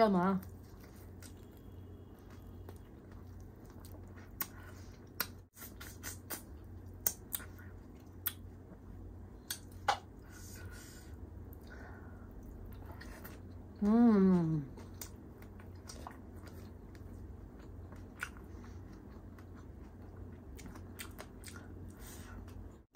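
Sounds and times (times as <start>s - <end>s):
steady low hum: 0.0s - 22.9s
person chewing food: 0.4s - 10.3s, 14.7s - 22.8s
mouth clicks and smacks: 4.3s - 8.5s.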